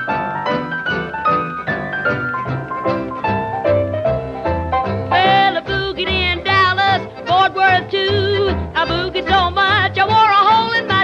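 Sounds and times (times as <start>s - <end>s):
sliding lead melody: 0.0s - 11.0s.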